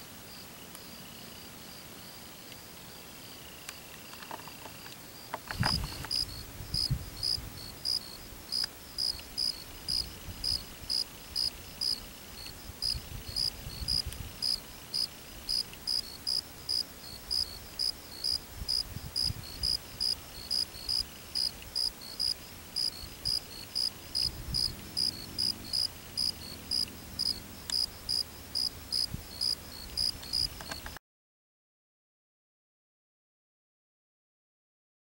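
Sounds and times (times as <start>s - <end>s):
cricket chirping: 0.3s - 31.0s.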